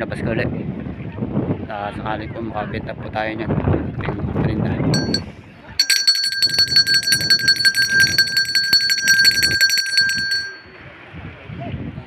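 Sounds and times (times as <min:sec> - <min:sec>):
small metal bell ringing rapidly: 0:05.0 - 0:10.7.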